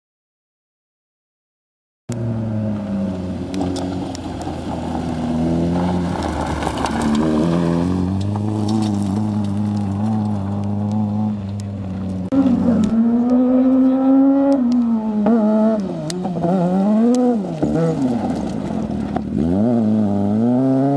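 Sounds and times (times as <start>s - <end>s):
rally car engine revving: 2.1s - 20.9s.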